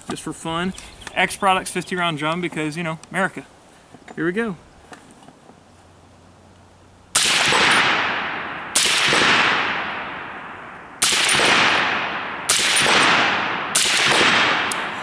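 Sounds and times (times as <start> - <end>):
suppressed rifle shots with echo: 7.2 - 15.0.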